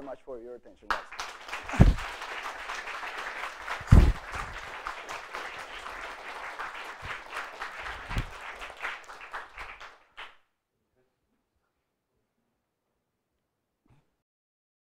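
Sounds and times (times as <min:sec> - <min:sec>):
audience applauding: 0:00.9 - 0:10.4
low thumps: 0:01.7 - 0:02.1, 0:03.8 - 0:04.6, 0:07.9 - 0:08.4.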